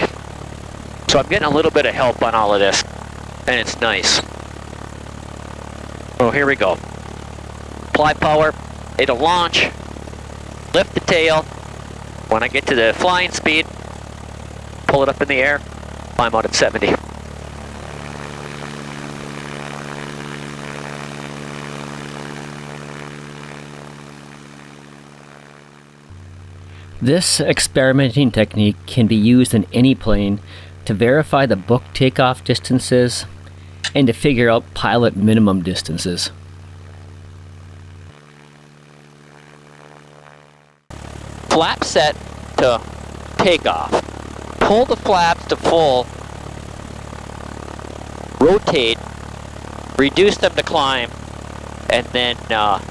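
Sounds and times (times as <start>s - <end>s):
propeller plane engine droning: 0.0s - 52.9s.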